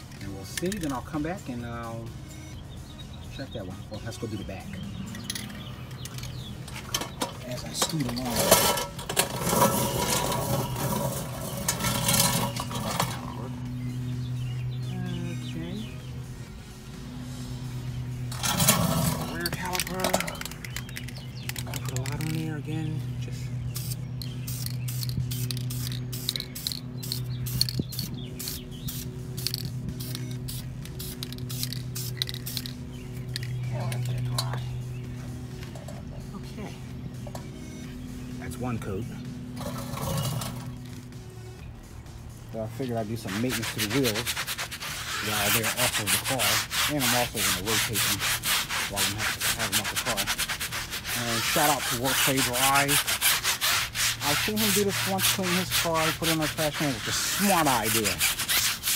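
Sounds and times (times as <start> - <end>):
aerosol can spraying: 23.7 - 33.5, 43.2 - 58.9.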